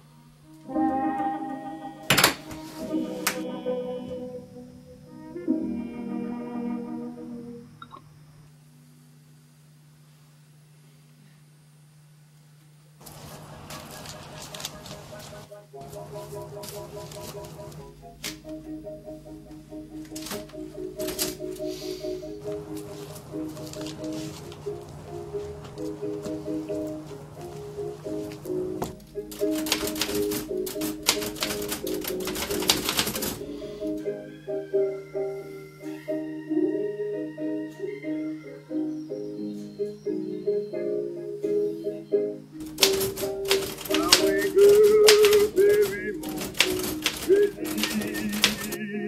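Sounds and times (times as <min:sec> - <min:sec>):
background music: 0:00.0 - 0:08.0, 0:15.2 - 0:49.0
manual typewriter clacking: 0:20.1 - 0:21.7, 0:22.4 - 0:25.0, 0:28.2 - 0:33.6, 0:42.6 - 0:48.8.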